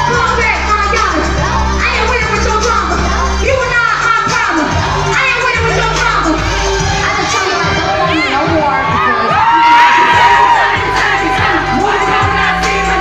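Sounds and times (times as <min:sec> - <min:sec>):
crowd cheering and screaming: 0:00.0 - 0:01.8, 0:06.6 - 0:13.0
bass-heavy live music: 0:00.0 - 0:13.0.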